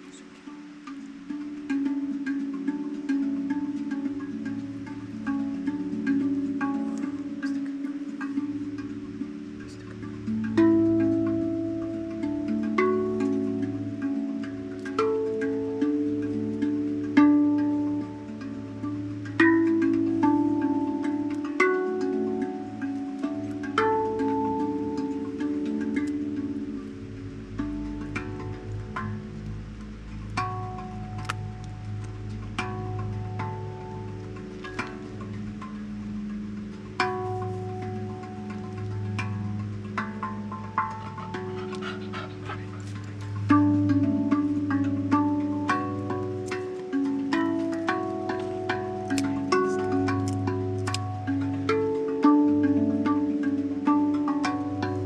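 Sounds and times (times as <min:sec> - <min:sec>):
handpan notes ringing: 0:00.0 - 0:55.0.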